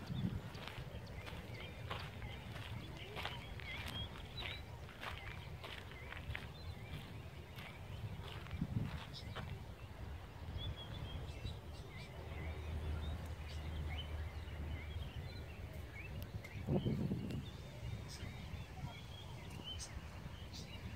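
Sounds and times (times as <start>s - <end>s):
low microphone rumble: 0.0s - 20.9s
small birds chirping: 0.0s - 20.9s.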